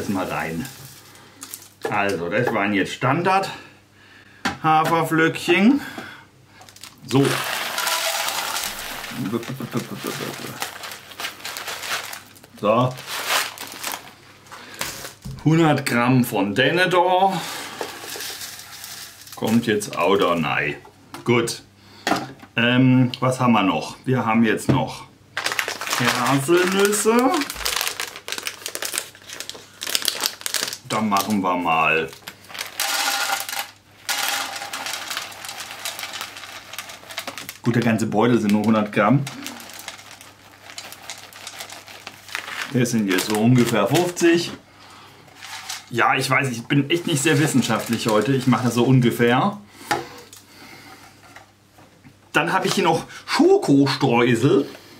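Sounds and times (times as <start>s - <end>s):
cereal pouring into plastic bowl: 0.0s - 1.8s, 6.7s - 14.1s, 17.3s - 20.4s, 25.4s - 44.4s, 45.4s - 49.0s
packet crinkling: 0.0s - 1.9s, 6.6s - 15.3s, 17.4s - 20.4s, 25.4s - 44.5s, 45.4s - 49.2s.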